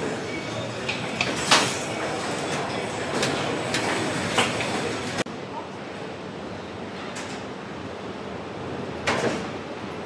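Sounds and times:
factory rumble: 0.0 - 10.0.

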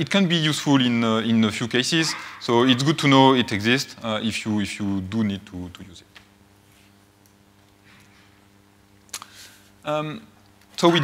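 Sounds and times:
man saying um: 1.9 - 4.2.

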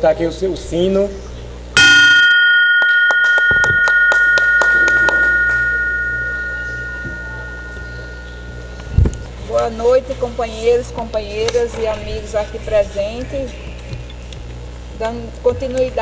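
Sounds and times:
bell ringing: 1.8 - 9.8
hand claps: 2.8 - 7.2.

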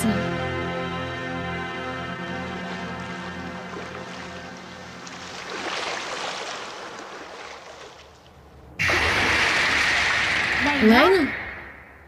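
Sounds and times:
rush of surging water: 3.1 - 8.1.

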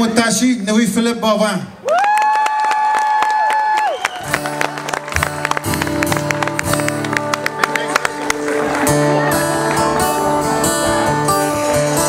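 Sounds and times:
live band playing: 4.2 - 12.0.

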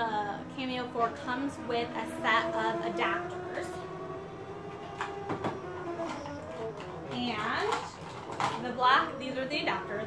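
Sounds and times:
cutting machine motor whine: 0.0 - 10.0.

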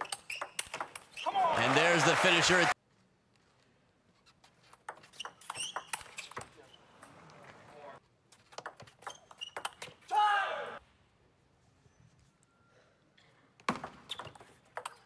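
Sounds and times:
table tennis ball hits: 0.0 - 1.1, 13.7 - 15.0
person speaking: 1.6 - 2.7.

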